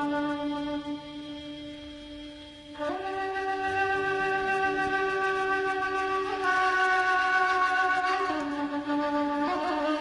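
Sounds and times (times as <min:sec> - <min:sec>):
flute-like melody: 0:00.0 - 0:10.0.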